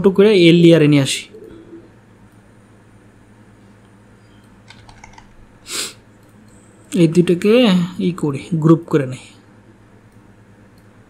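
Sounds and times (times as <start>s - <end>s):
keyboard and mouse clicks: 4.6s - 5.4s.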